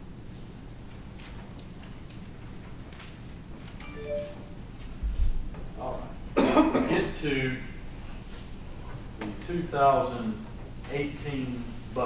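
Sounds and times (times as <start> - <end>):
person coughing: 6.4 - 7.0.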